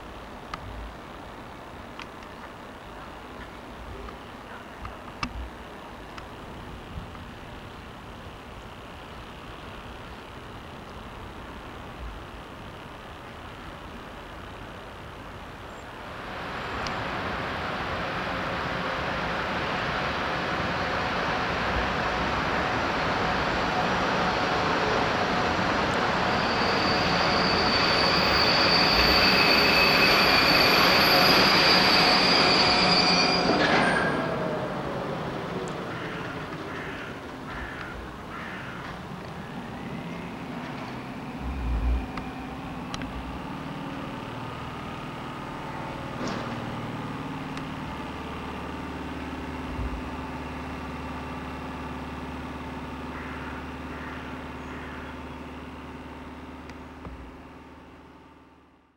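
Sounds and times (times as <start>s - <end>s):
train rumble: 0.0s - 58.6s
electric locomotive and wagons passing: 0.0s - 58.8s
high-pitched squeal: 23.5s - 37.0s, 38.8s - 45.1s.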